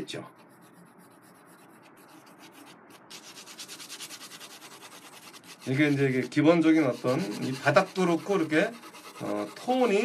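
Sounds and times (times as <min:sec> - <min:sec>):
pencil shading on paper: 0:00.0 - 0:10.0.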